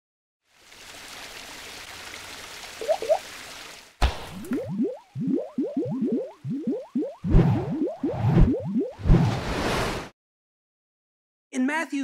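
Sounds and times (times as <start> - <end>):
short rising bloops: 4.3 - 9.4.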